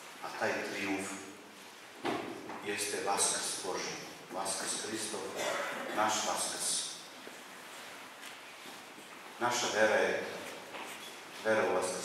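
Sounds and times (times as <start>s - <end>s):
man preaching through microphone: 2.7s - 7.0s, 9.4s - 10.4s, 11.4s - 12.0s.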